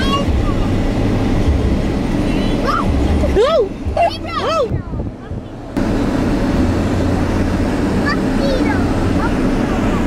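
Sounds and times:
car cabin rumble: 0.0s - 10.0s.

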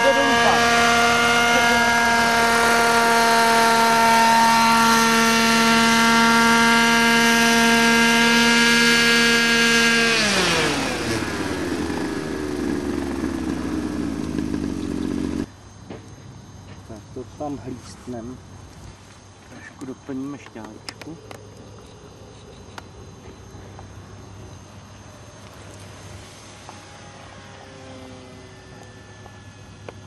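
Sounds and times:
model helicopter engine: 0.0s - 15.5s, 24.2s - 30.0s.

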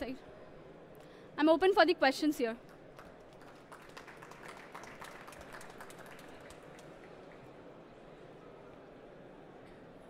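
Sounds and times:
audience applause: 2.6s - 7.8s.

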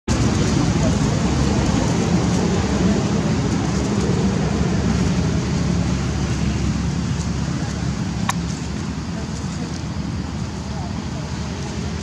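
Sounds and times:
low rumble: 0.1s - 12.0s.

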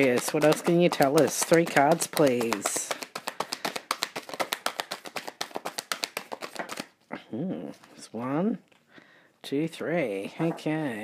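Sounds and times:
cards being shuffled: 0.0s - 7.0s.

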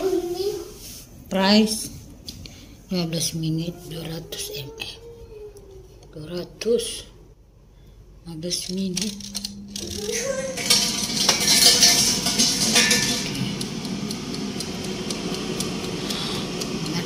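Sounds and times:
air fryer fan whirring: 7.4s - 17.0s.

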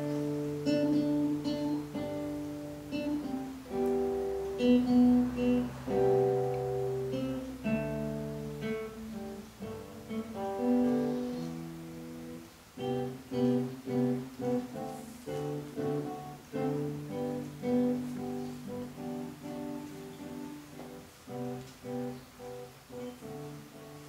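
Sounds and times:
fingerstyle classical guitar: 0.0s - 24.0s.

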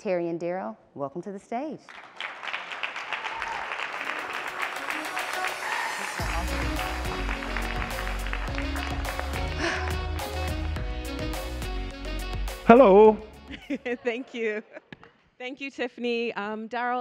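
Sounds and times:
audience applause: 1.9s - 10.8s
music with heavy bass and beat: 6.2s - 13.4s.

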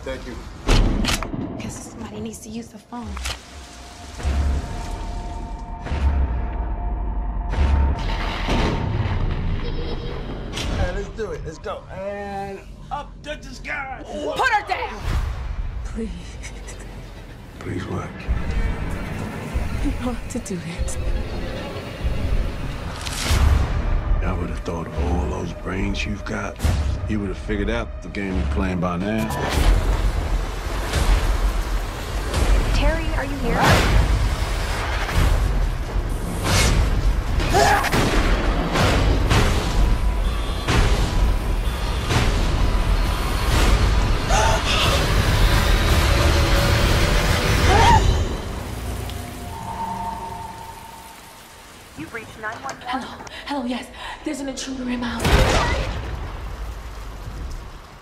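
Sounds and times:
heavy rain hissing: 29.3s - 58.0s.

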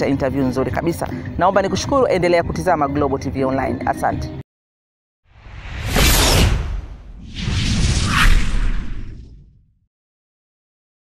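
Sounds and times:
deep whoosh effect: 5.3s - 9.7s.

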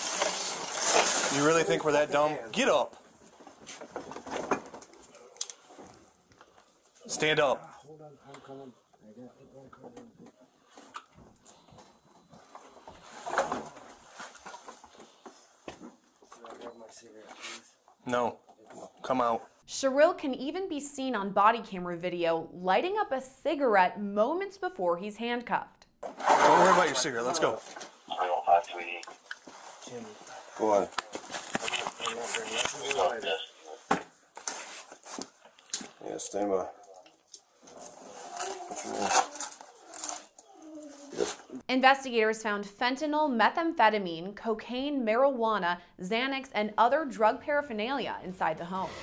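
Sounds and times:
rustling: 0.0s - 2.1s, 10.6s - 16.6s, 26.0s - 36.0s, 36.9s - 41.6s
indistinct voices: 32.0s - 33.8s.

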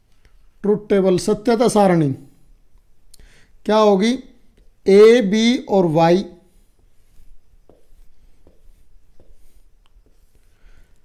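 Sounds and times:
marker drawing on whiteboard: 6.5s - 10.6s.

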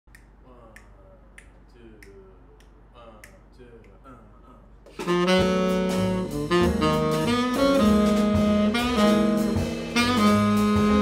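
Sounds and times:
finger snaps: 0.1s - 4.0s.

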